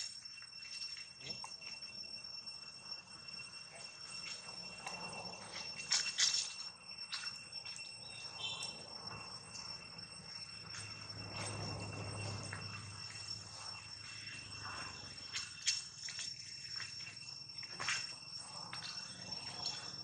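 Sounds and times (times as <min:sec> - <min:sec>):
insect drone: 0:00.0 - 0:20.0.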